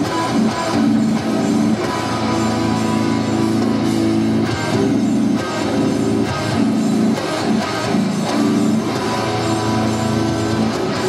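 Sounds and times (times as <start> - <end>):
high-gain electric guitar riffs: 0.0 - 11.0.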